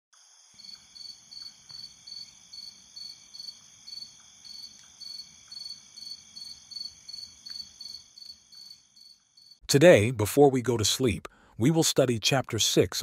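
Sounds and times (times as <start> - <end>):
crickets chirping: 0.2 - 9.6
high insect trill: 0.2 - 9.6.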